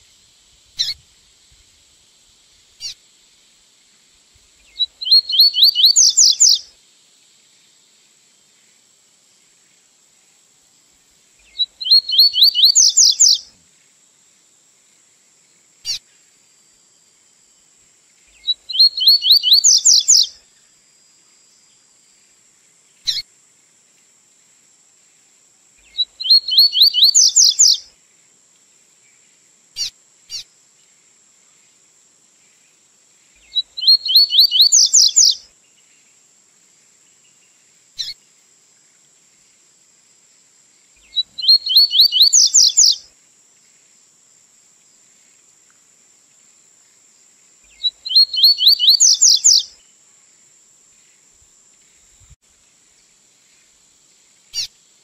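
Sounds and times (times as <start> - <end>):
bird song rising repeated notes: 5.0 - 6.6, 11.8 - 13.4, 18.7 - 20.2, 26.2 - 27.8, 33.8 - 35.4, 41.4 - 43.0, 48.1 - 49.6
short bird chirp: 41.0 - 43.0.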